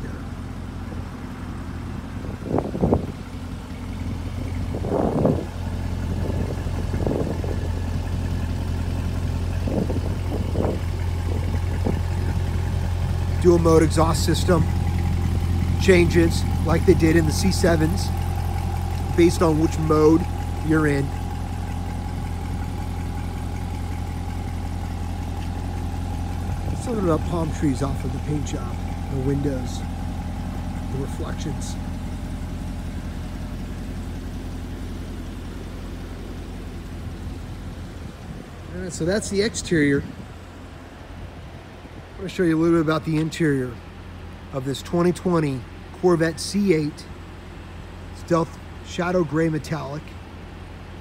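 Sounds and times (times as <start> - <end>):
car engine idling: 0.0 - 51.0.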